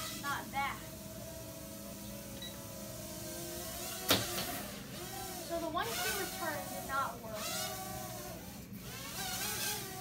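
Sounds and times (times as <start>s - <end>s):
toy drone propellers whirring: 0.0s - 10.0s.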